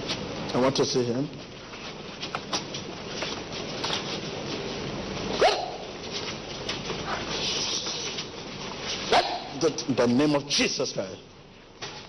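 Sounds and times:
people shuffling and rustling: 0.0 - 12.0.

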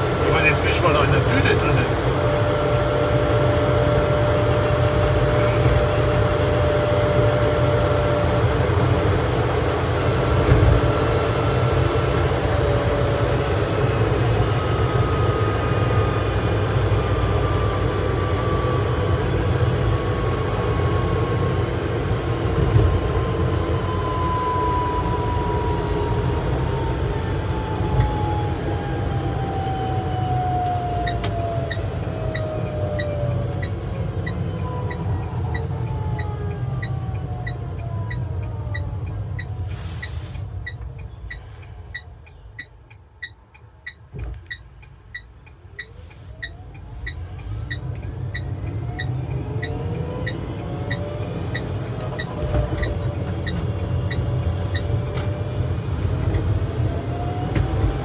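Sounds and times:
road and tyre rumble: 0.0 - 58.0.

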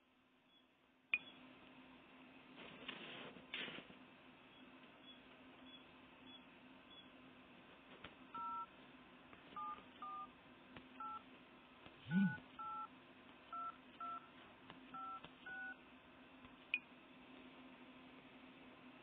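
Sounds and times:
phone keypad beeps: 8.4 - 8.7, 9.6 - 10.3, 11.0 - 11.2, 12.2 - 12.9, 13.5 - 14.3, 14.9 - 15.8.

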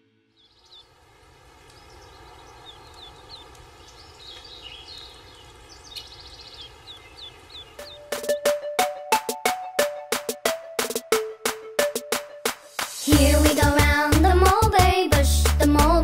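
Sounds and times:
soft outdoor background: 0.0 - 16.0
small birds chirping: 0.3 - 8.6.

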